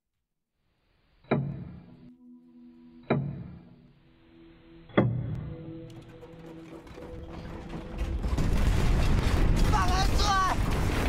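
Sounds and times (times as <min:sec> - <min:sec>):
house rattling and creaking: 0:05.0 - 0:11.0.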